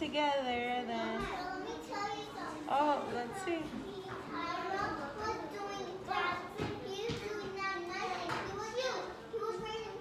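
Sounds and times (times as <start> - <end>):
young children chattering: 0.9 - 10.0.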